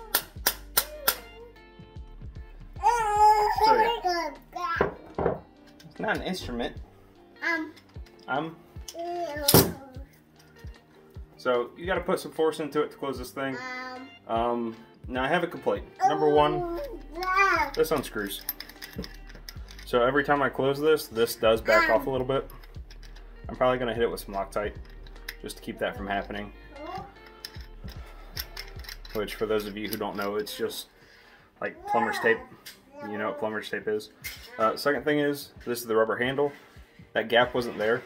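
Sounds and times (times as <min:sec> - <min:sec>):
metal cap faint clicks: 0:24.8 - 0:25.4.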